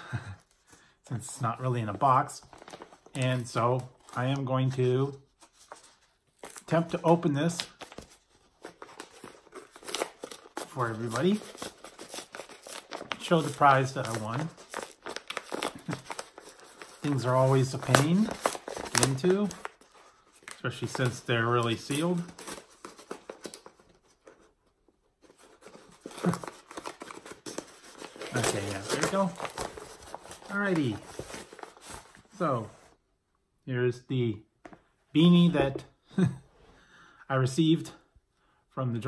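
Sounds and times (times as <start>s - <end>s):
paper mailer crinkling and tearing: 1.4s - 24.2s, 25.4s - 32.4s.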